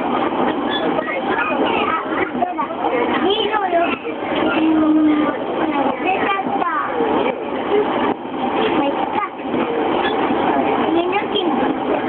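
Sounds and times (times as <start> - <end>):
moving train running noise: 0.0 - 12.0
people talking: 0.0 - 12.0.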